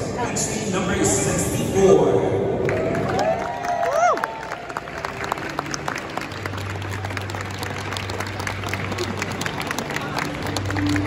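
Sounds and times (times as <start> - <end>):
audience applauding: 2.6 - 11.0.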